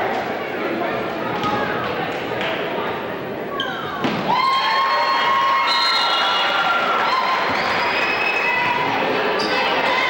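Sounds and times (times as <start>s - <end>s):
spectators cheering and yelling: 4.2s - 10.0s.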